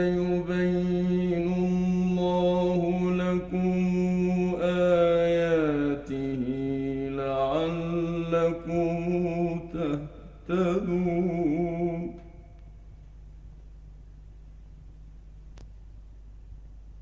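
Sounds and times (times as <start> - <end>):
man chanting recitation: 0.0 - 12.2.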